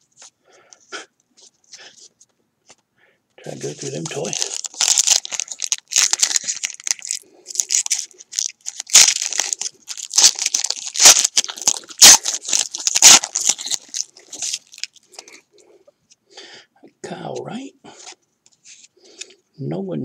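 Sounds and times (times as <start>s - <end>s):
card pack wrapper crinkling: 3.5s - 15.4s.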